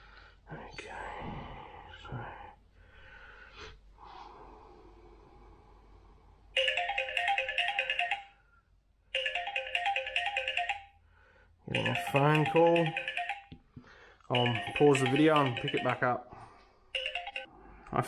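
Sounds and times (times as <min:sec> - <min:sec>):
mobile phone ringtone: 0:06.6 - 0:08.4, 0:09.2 - 0:11.1, 0:11.7 - 0:13.6, 0:14.3 - 0:16.2, 0:16.9 - 0:17.5.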